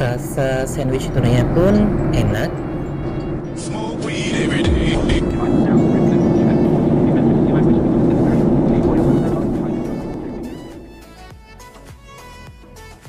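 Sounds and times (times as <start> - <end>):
airliner cabin roar: 0.0 - 11.9.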